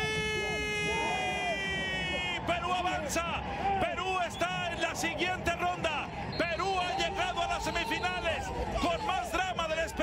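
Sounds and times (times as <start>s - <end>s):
man shouting football commentary: 0.0s - 10.0s.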